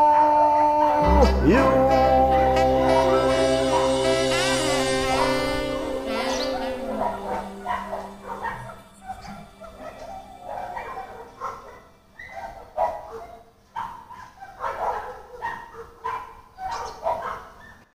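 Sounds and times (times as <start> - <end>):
backing music held note: 0.9 - 13.3
dog barking and yipping: 3.0 - 17.9.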